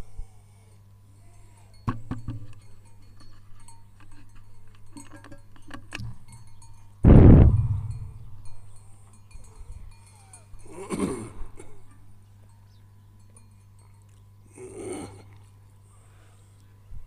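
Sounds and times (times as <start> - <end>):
electrical hum: 7.0 - 9.0
thump on microphone: 7.1 - 8.2.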